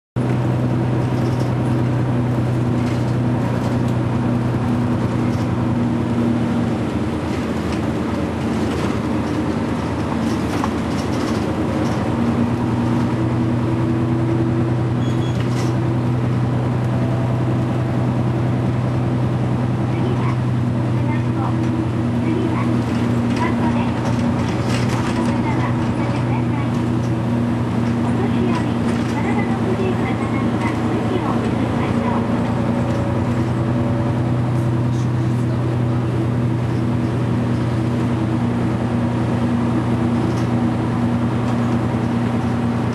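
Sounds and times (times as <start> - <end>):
bus diesel engine drone: 0.2 - 42.9.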